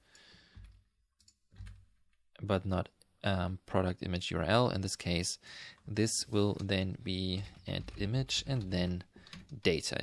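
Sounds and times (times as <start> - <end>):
keyboard and mouse clicks: 0.1 - 2.2.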